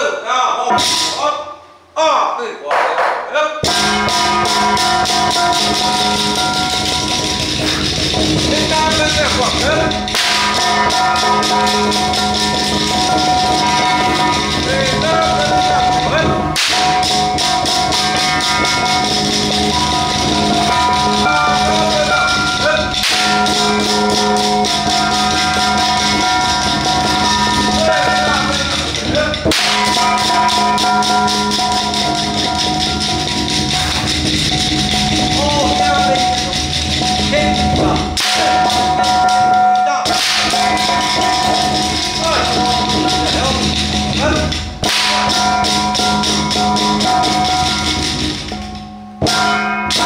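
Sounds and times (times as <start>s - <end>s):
ringing metallic tones: 0.7s - 2.0s, 3.6s - 50.0s
fast percussion roll: 2.7s - 50.0s
person chanting: 8.4s - 17.3s, 19.8s - 33.0s.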